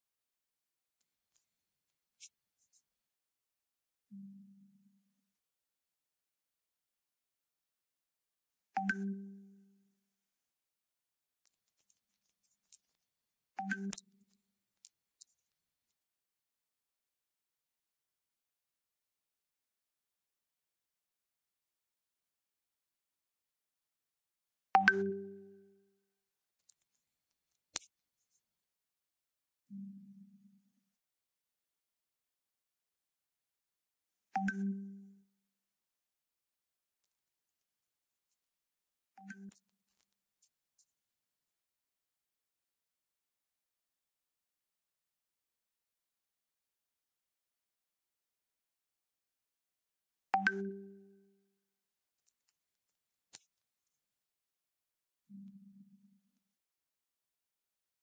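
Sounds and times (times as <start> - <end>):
high-pitched steady tone: 1.0 - 3.1, 11.5 - 16.0, 26.6 - 28.7, 37.2 - 41.6, 52.2 - 54.3.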